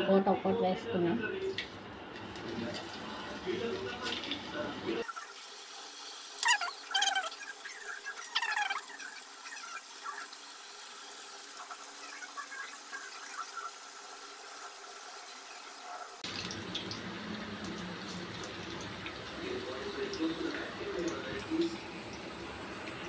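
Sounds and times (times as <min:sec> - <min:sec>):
batter frying in hot oil: 0:01.3 - 0:23.0.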